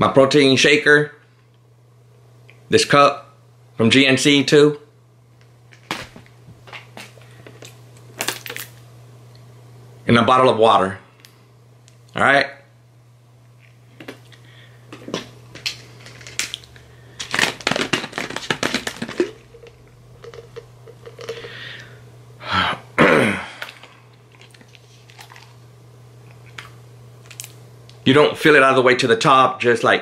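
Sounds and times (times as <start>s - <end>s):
plastic bottle crinkling: 14.0s - 21.6s, 23.6s - 25.6s, 26.3s - 27.6s
bottle cap twisting open: 18.6s - 21.5s.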